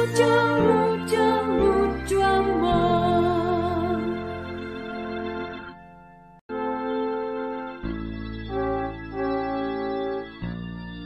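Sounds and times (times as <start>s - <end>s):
instrumental music: 0.0s - 11.0s.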